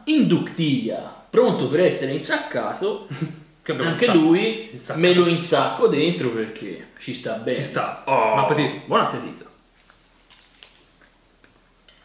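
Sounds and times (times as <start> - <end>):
people chewing food: 9.5 - 12.0.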